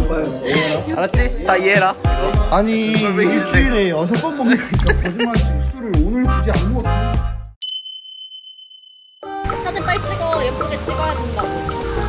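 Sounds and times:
rapping over backing music: 0.0 - 7.0
high chime ding: 7.6 - 9.5.

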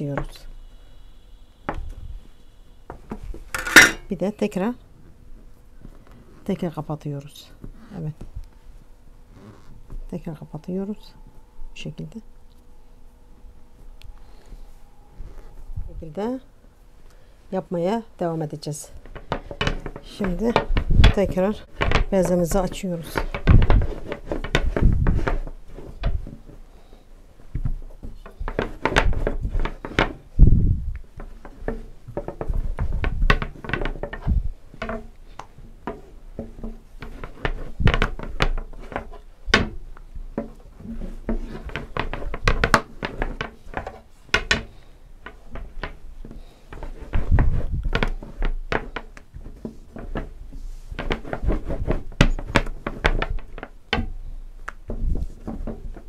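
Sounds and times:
rolling pin rolling dough: 19.0 - 56.0.

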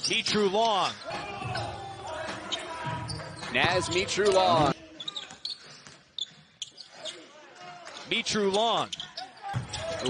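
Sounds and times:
sneaker squeaks: 0.8 - 7.3, 7.9 - 10.0.

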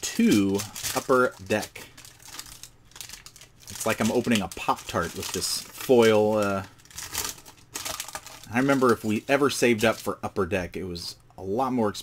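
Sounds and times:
person speaking: 0.0 - 2.1, 3.6 - 6.8, 8.3 - 12.0
foil wrapper crinkling: 0.0 - 10.2.

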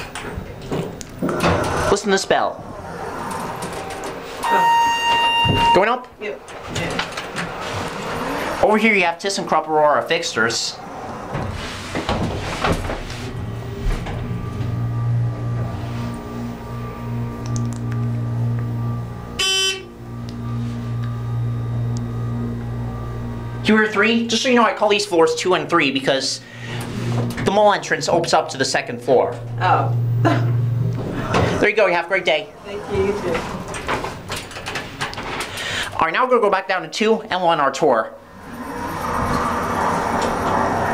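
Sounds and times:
elevator pump motor humming: 0.0 - 36.0, 38.2 - 40.9
short electronic beep: 4.4 - 5.9, 19.4 - 19.9.

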